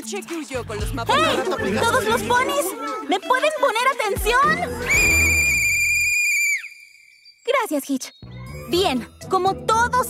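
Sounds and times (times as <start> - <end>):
shrill whistle blast: 4.8 - 8.5.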